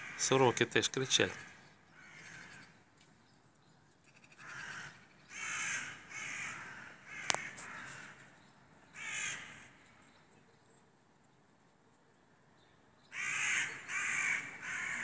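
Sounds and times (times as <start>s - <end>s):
crows cawing: 0.0s - 2.8s, 4.1s - 9.9s, 13.1s - 15.0s.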